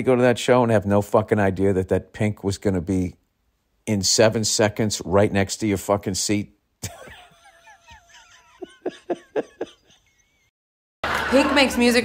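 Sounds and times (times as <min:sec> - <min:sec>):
man laughing: 0:06.8 - 0:10.5
faint crowd cheering: 0:11.0 - 0:12.0.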